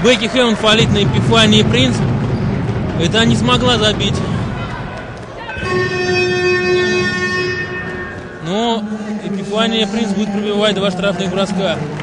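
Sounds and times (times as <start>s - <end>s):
murmur of crowd in hall: 0.0s - 12.0s
arena horn steady tone: 5.5s - 9.4s.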